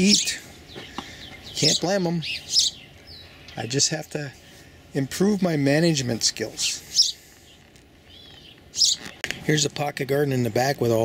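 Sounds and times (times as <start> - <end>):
bird chirping faint warble: 0.0 - 3.9, 6.7 - 9.3.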